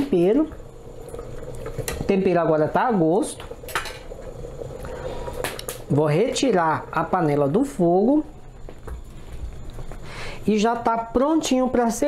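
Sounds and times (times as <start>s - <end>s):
broth bubbling in pot: 0.0s - 11.8s.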